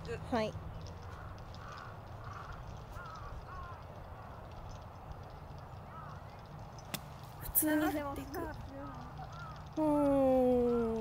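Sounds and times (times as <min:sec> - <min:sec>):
bird calling: 0:00.0 - 0:11.0.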